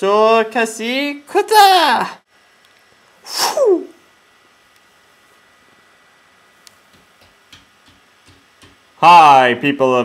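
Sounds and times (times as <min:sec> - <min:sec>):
person making breathy hiss effect: 0:03.2 - 0:04.0.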